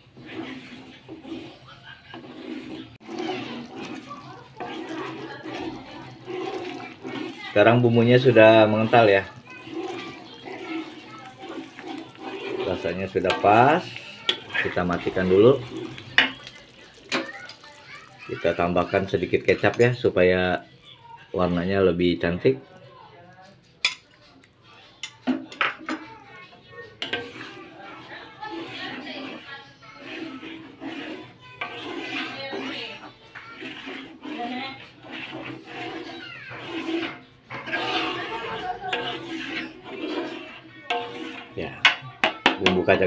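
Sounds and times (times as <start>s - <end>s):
metal spatula scraping a wok: 0.0s - 20.1s, 25.0s - 43.0s.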